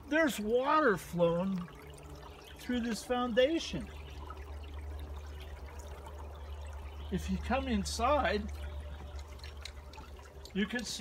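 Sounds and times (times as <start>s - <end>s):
low steady rumble: 0.0s - 11.0s
water trickling: 0.0s - 11.0s.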